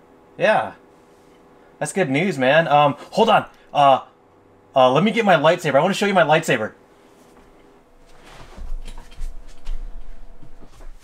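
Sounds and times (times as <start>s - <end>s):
faint steady hum: 0.0s - 11.0s
soft footsteps: 7.1s - 11.0s
knocks and rustles of handling: 7.2s - 11.0s.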